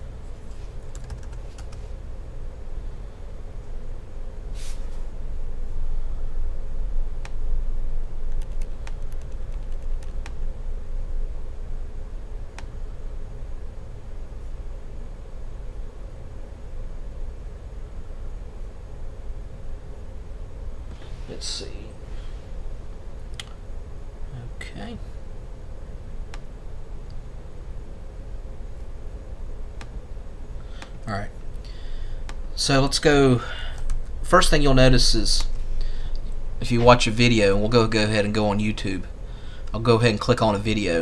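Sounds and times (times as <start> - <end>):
faint hum: 0.0 - 41.0
steady low rumble: 1.6 - 41.0.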